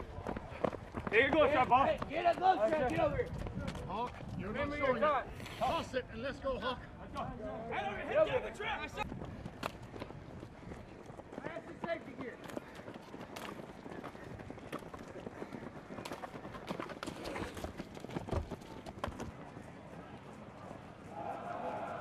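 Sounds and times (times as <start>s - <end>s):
footsteps running on road: 0.0s - 5.0s, 8.7s - 22.0s.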